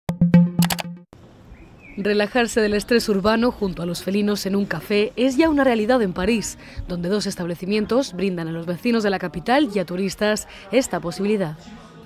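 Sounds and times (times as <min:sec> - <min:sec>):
faint background noise: 0:01.2 - 0:12.0.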